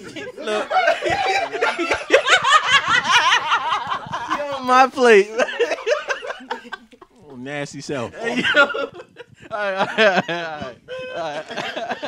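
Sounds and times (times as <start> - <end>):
group of people laughing: 0.0 - 7.3, 8.1 - 12.0.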